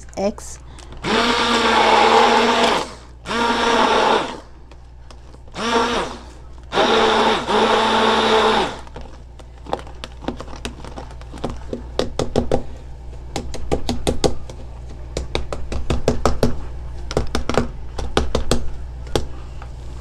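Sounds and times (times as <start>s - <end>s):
stick blender motor: 1.0s - 4.5s, 5.5s - 9.0s.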